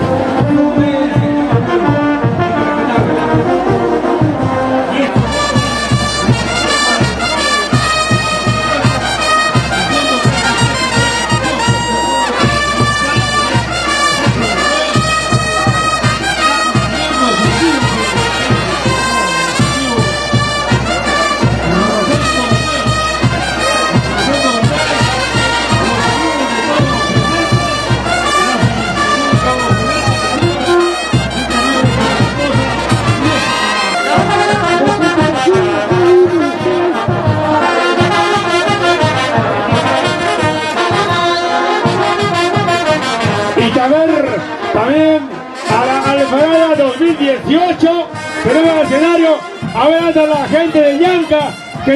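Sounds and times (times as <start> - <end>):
bass drum beat: 0.0 - 51.9
trumpets and trombones playing: 0.0 - 51.9.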